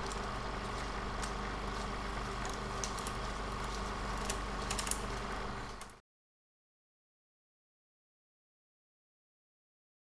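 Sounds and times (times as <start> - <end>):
crackling clicks: 0.0 - 6.0
film projector whirring: 0.0 - 6.0.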